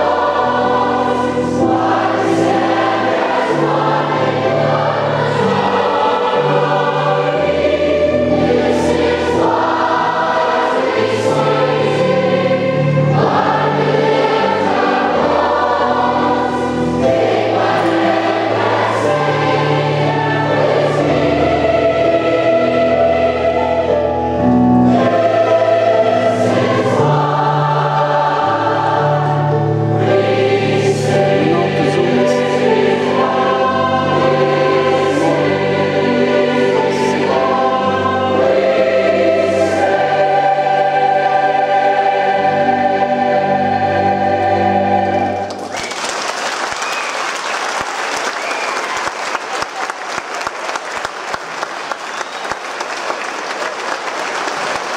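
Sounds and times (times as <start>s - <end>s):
massed choir singing: 0.0s - 45.8s
audience applause: 45.5s - 54.9s.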